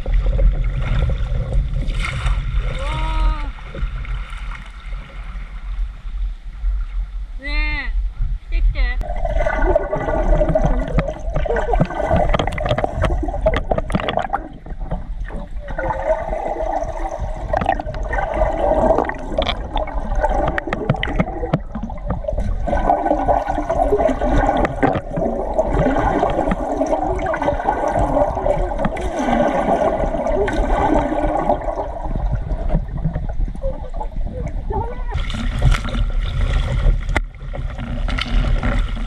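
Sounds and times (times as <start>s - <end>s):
muffled underwater water rushing: 0.0s - 39.0s
small clicks and bubble pops: 10.4s - 15.5s, 17.5s - 18.2s, 18.8s - 22.5s, 24.3s - 29.0s.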